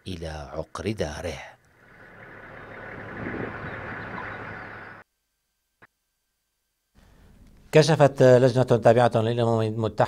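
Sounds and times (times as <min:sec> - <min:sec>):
military vehicle engines rumbling: 0:01.7 - 0:05.0
road noise: 0:01.7 - 0:05.0.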